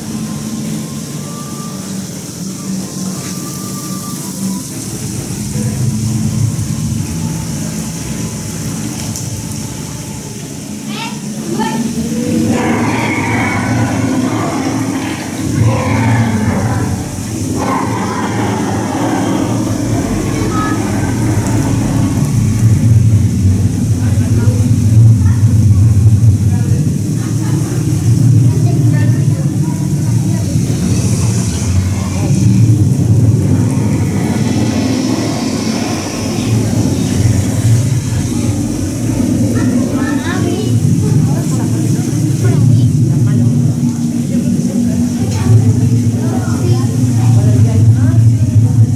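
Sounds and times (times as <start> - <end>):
deep growling rumble of breath: 4.8 - 10.3, 11.2 - 48.9.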